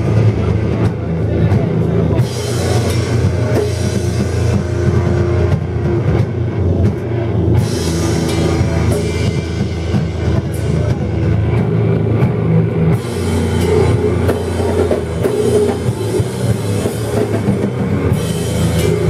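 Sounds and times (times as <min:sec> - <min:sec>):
heavy metal band playing live: 0:00.0 - 0:19.0.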